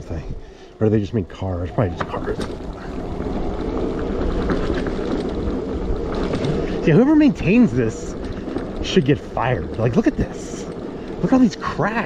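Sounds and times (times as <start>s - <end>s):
electric bike motor hum: 0.3s - 12.0s
tyre and frame rattle: 1.8s - 12.0s.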